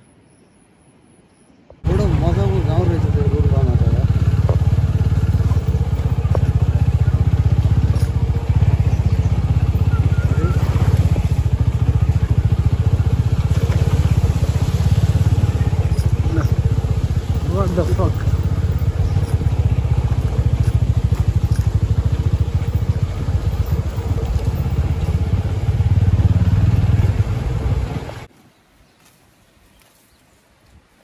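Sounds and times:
motorcycle engine running: 1.8s - 28.3s.

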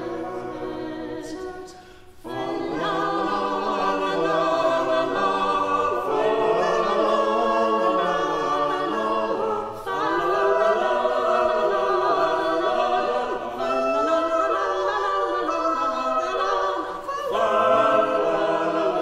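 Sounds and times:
vocal ensemble singing in church: 0.0s - 19.0s.

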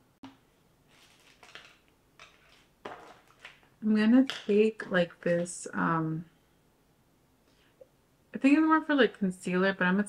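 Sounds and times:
soft rustles: 0.9s - 3.8s.

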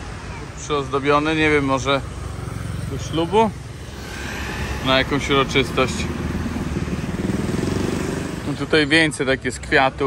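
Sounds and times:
motorbike engine passing: 1.2s - 9.0s.

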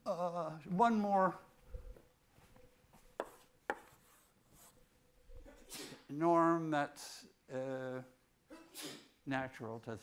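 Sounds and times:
chalk tapping on blackboard: 3.2s - 4.7s.

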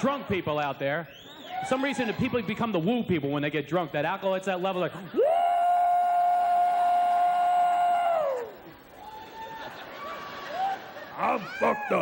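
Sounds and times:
man whooping into microphone: 5.2s - 9.7s, 10.6s - 12.0s.

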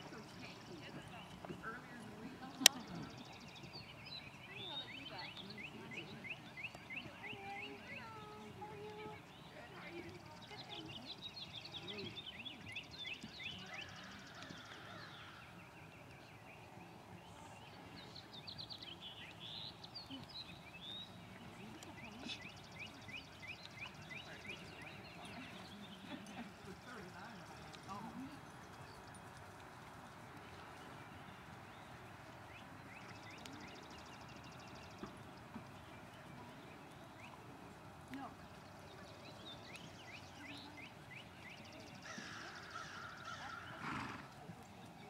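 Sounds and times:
bird chirping: 2.6s - 29.4s
faint distant voice: 21.2s - 29.4s.

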